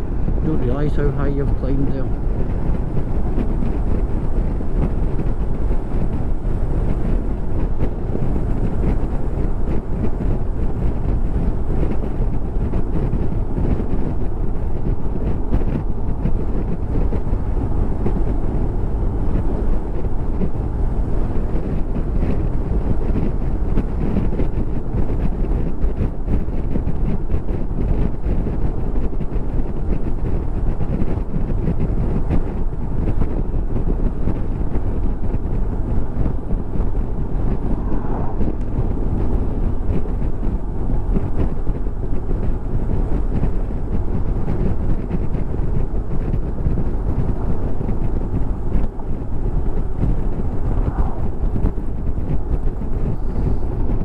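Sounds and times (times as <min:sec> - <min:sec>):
motorcycle road and engine noise: 0:00.0 - 0:54.0
wind rushing over microphone: 0:00.0 - 0:54.0.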